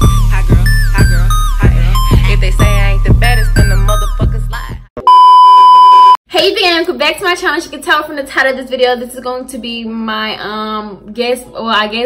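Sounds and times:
high-pitched test tone beep: 5.0s - 6.2s.

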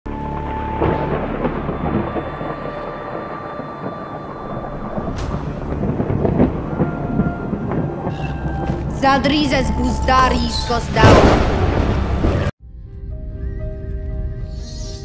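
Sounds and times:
rain: 0.1s - 12.5s
thunder rumbling: 0.1s - 12.5s.

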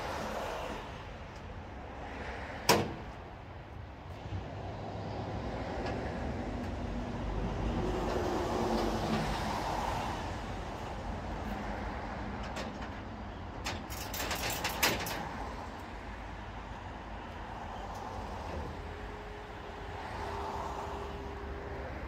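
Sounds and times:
heavy truck running: 0.0s - 22.0s
metallic clicks and clanks: 12.4s - 15.9s.

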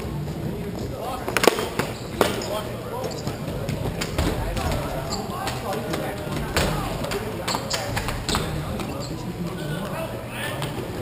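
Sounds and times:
players calling: 0.0s - 11.0s
hockey sticks clacking: 1.1s - 9.2s.

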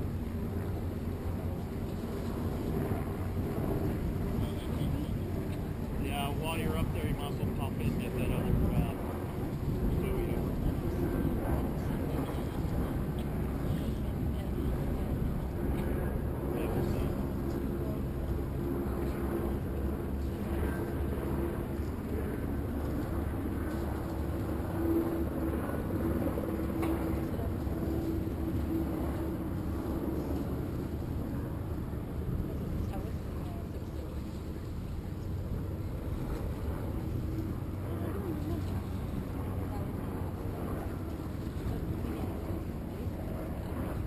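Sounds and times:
wind noise: 0.0s - 17.4s
low motor drone: 0.0s - 44.0s.

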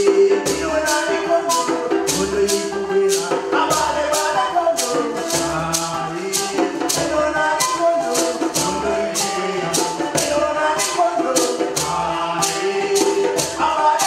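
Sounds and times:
man singing: 0.0s - 14.0s
shaker rattling: 0.0s - 14.0s.

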